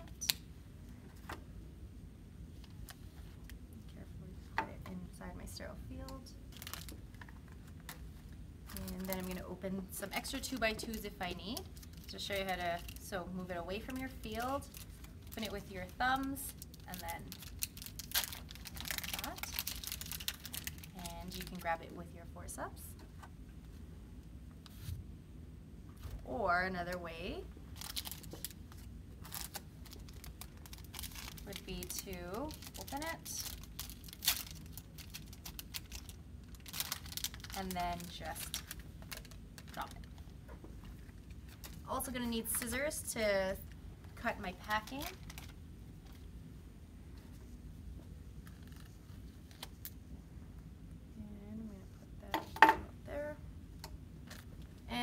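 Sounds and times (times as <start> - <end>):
gauze packet crinkling: 6.5 - 7.1, 8.6 - 9.5, 10.1 - 13.1, 14.0 - 21.7, 27.7 - 41.9, 44.6 - 46.3, 48.4 - 50.0.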